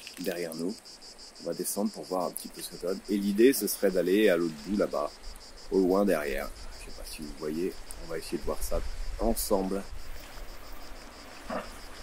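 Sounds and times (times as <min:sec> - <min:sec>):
insect chirping: 0:00.0 - 0:12.0
low wind rumble: 0:02.8 - 0:12.0.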